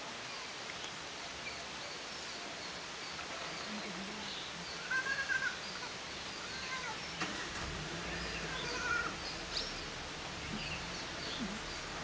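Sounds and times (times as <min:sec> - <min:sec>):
steady background hiss: 0:00.0 - 0:12.0
birds whistling calls: 0:07.8 - 0:12.0.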